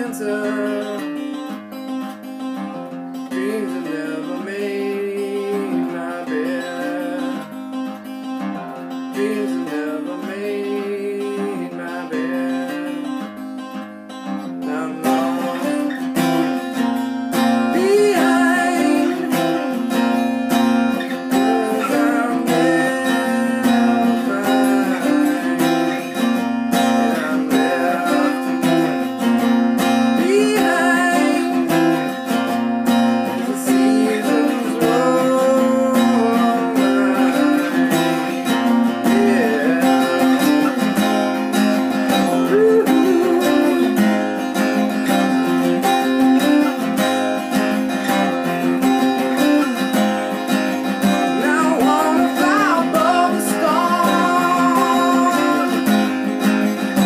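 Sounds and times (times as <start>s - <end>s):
man singing: 0.0s - 1.5s, 3.2s - 8.0s, 8.9s - 13.3s, 14.4s - 46.6s, 51.0s - 57.0s
acoustic guitar strumming: 0.0s - 57.0s.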